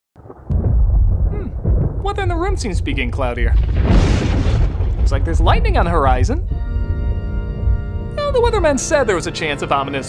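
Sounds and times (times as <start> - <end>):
thunder rumbling: 0.2 - 9.7.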